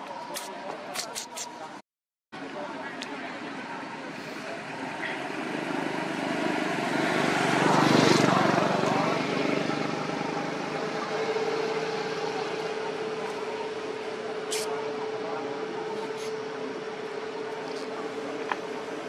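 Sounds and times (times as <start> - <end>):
motor vehicle passing: 4.8 - 14.7.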